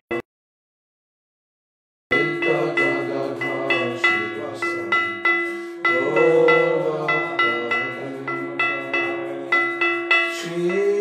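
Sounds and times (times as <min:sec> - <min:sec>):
hand cymbals struck rhythmically: 0:02.1 - 0:11.0
steady held drone: 0:02.1 - 0:11.0.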